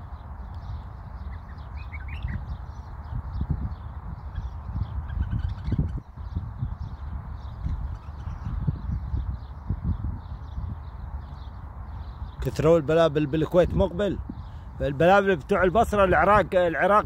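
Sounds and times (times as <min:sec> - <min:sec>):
birds chirping and twittering: 0:00.0 - 0:17.0.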